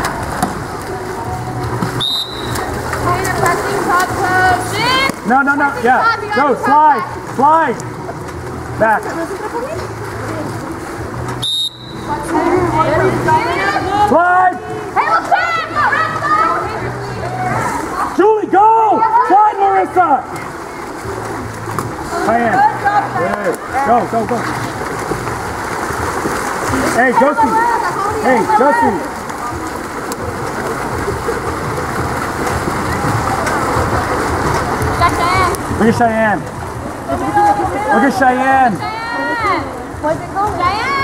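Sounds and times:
swimmers splashing in a pool: 0.0 - 41.0
referee's whistle blast: 2.0 - 2.6, 11.4 - 12.0.

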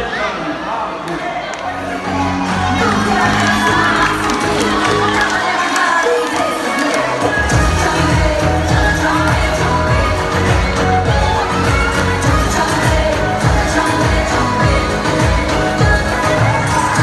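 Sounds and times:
crowd cheering and shouting: 0.0 - 17.0
upbeat pop dance music: 1.2 - 17.0
person singing: 1.8 - 17.0
heavy bass beat: 7.4 - 17.0.

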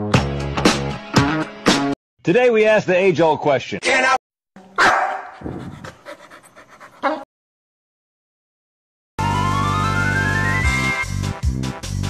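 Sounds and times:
dog yipping: 4.8 - 7.2
dog whimpering: 5.2 - 7.3.

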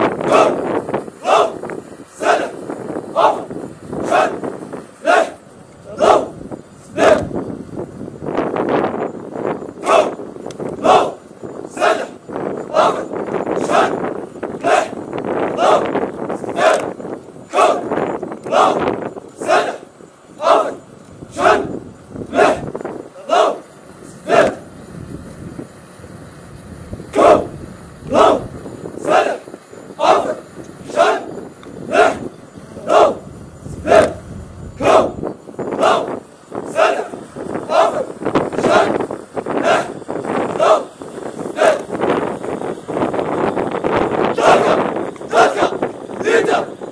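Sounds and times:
crowd chanting: 0.1 - 7.4, 9.8 - 10.2, 10.8 - 24.7, 27.2 - 27.5, 28.1 - 34.2, 34.8 - 42.0, 44.3 - 46.9.

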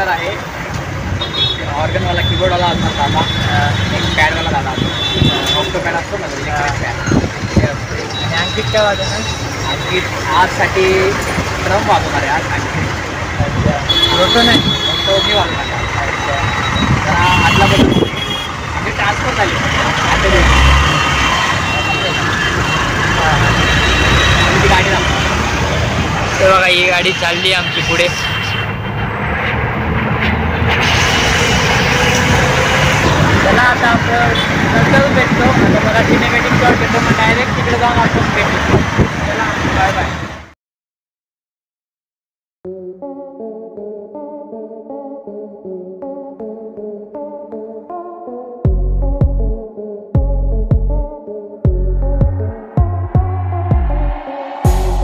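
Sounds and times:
vehicle engine rumbling: 0.0 - 40.5, 51.7 - 55.0
road traffic: 0.0 - 40.6, 51.7 - 55.0
voices talking: 1.4 - 28.8, 32.6 - 40.2.

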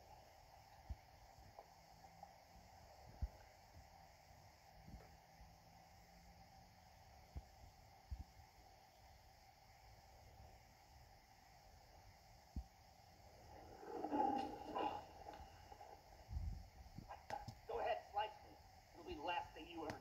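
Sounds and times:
faint hiss: 0.0 - 20.0.

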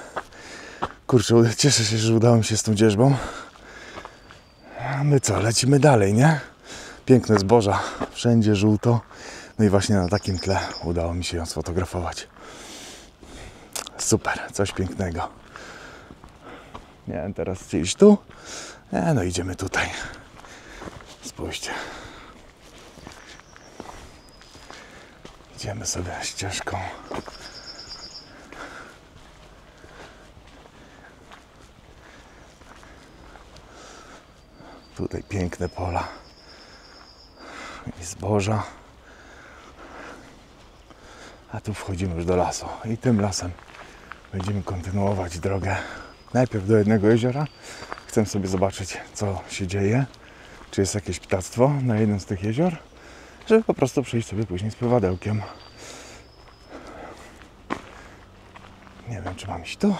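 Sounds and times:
footsteps on dirt path: 0.0 - 59.9.

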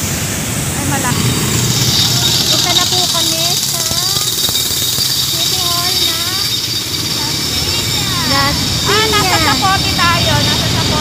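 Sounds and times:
wind rushing: 0.0 - 11.0
motorcycle engine rumble: 0.5 - 11.0.

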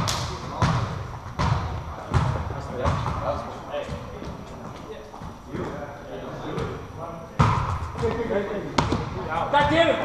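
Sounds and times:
volleyball being struck: 0.0 - 3.4, 7.4 - 8.2
players' voices and calls: 0.0 - 10.0.

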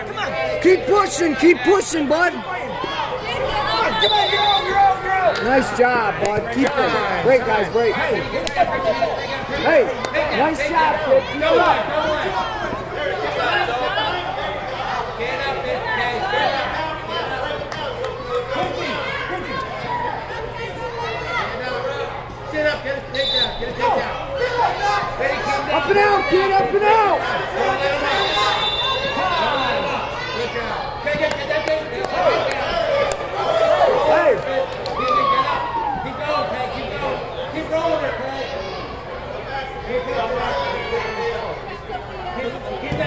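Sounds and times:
voices calling out and chattering: 0.0 - 43.0.

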